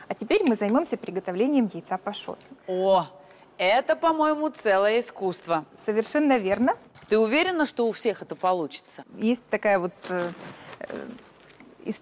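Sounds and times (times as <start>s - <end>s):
woman speaking: 0.0s - 11.2s.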